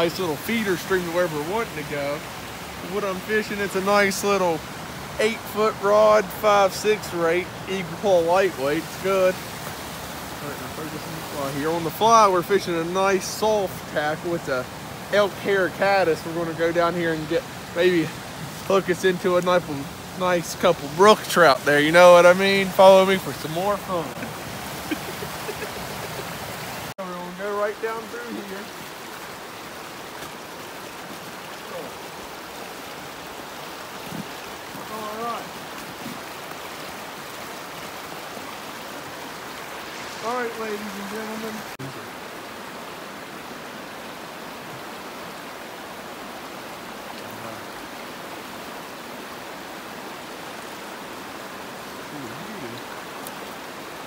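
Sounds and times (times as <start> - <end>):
mountain stream rushing: 0.0 - 54.0.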